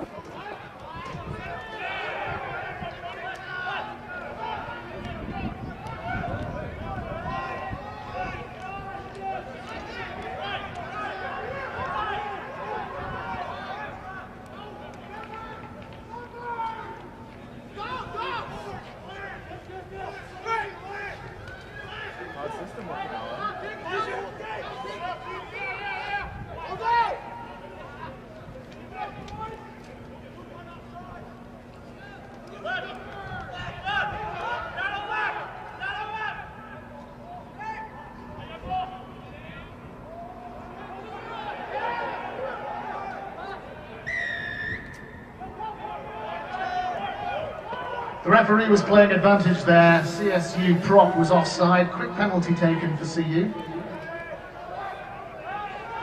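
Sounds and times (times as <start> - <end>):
players and spectators shouting: 0.0 - 56.0
referee's whistle blast: 44.0 - 45.0.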